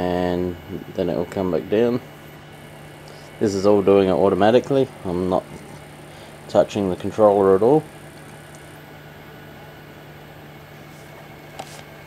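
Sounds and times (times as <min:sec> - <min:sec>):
motors humming: 0:00.0 - 0:12.0.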